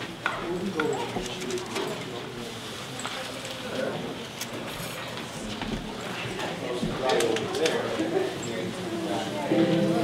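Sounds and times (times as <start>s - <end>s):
murmur of overlapping conversation: 0.0s - 10.0s.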